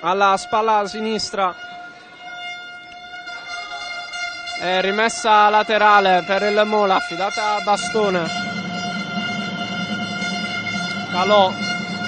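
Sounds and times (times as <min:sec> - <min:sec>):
faint hall ambience: 0:00.0 - 0:12.0
steady pitched tone: 0:00.0 - 0:12.0.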